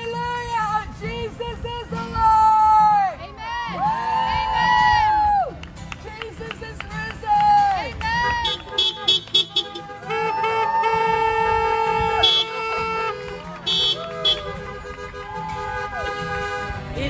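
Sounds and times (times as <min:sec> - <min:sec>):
car horns honking: 0:08.1 - 0:17.0.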